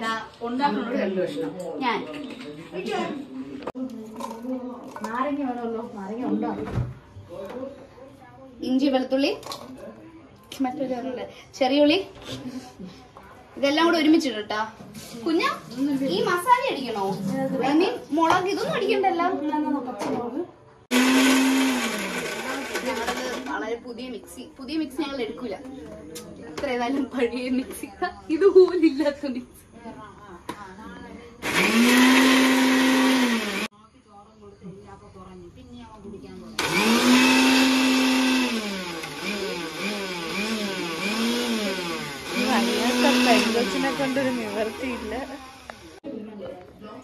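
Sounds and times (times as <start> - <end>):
mixer grinder motor whirring: 20.9 - 23.6, 31.4 - 33.7, 36.6 - 46.0.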